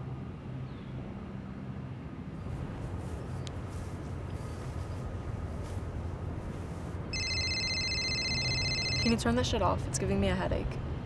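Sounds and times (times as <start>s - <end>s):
phone ringing: 7.1s - 9.3s.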